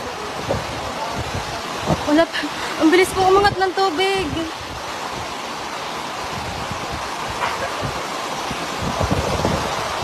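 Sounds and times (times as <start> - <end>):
floodwater rushing: 0.0 - 10.0
heavy rain: 0.0 - 10.0
wind gusts on microphone: 0.0 - 10.0.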